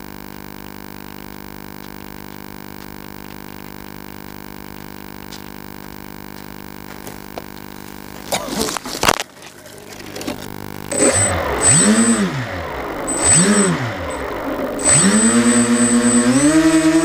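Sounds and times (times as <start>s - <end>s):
crackling clicks: 0.0s - 15.8s
steady electrical hum: 0.0s - 17.0s
electric motors whining: 1.8s - 17.0s.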